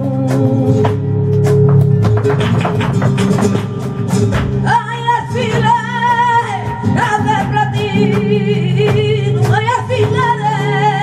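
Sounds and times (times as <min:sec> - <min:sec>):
flamenco guitar percussive strikes: 0:00.0 - 0:11.0.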